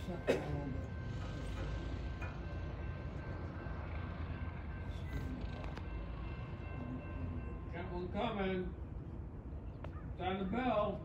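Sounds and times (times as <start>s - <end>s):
crossing bell ringing: 0.0s - 9.6s.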